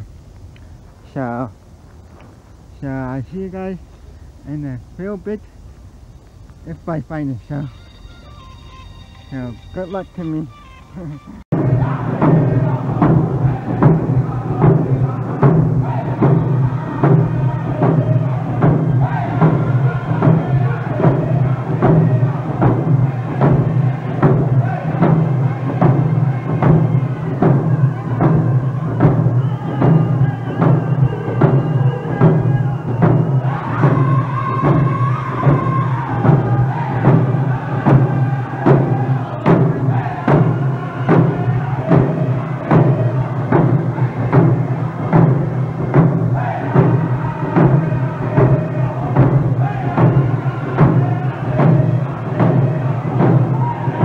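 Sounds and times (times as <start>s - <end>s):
voices singing: 2.6s - 54.0s
group chanting high-pitched vocals: 7.5s - 54.0s
hand drums beating: 11.6s - 54.0s.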